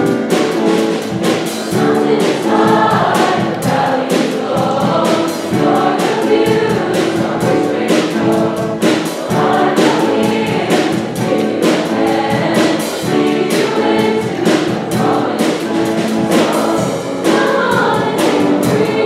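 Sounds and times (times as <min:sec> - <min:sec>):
choir singing pop song: 0:00.0 - 0:19.0
drum kit beat: 0:00.0 - 0:19.0
piano: 0:00.0 - 0:19.0.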